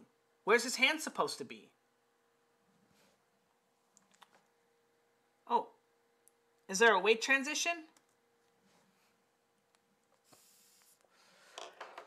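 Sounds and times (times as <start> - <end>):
soft rustling: 2.7 - 4.6, 8.4 - 11.5.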